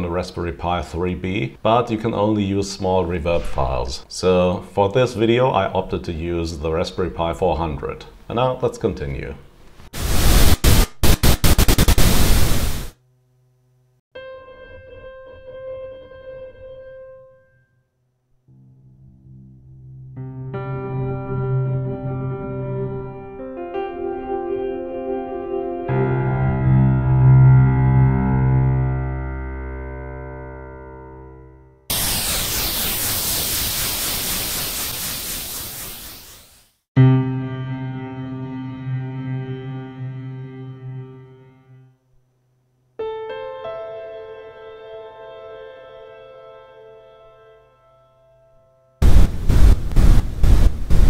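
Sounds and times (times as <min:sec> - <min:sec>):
choppy bursts of hiss-like noise: 0:10.0 - 0:12.9, 0:31.9 - 0:36.8.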